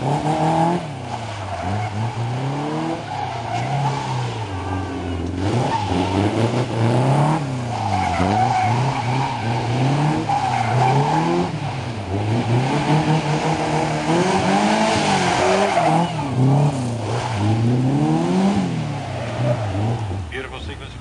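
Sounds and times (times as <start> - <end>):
car engine revving: 0.0 - 21.0
tyres squealing: 1.2 - 11.7, 14.3 - 17.6.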